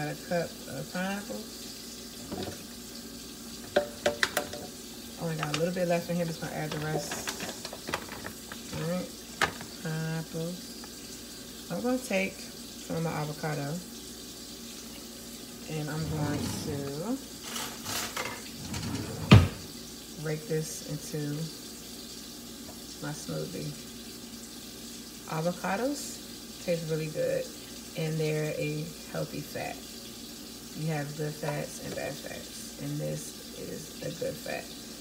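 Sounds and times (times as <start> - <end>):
fruit chunks pattering into jar: 6.7 - 8.8.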